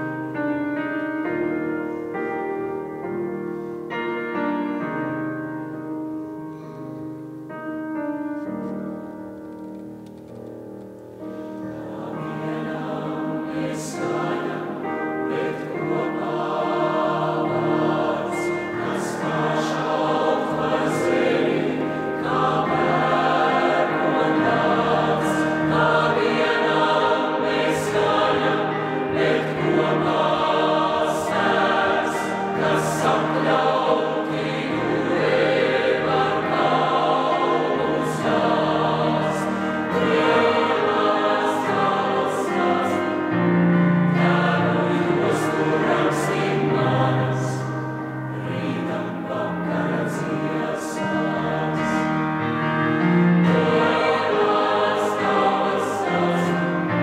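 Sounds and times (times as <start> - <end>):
mixed choir singing: 11.4 - 57.0.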